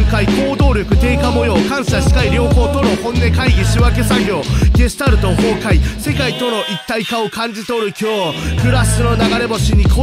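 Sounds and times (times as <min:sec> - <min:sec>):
deep bass and kick drums: 0:00.0 - 0:06.2, 0:08.6 - 0:10.0
rapping over a beat: 0:00.0 - 0:10.0.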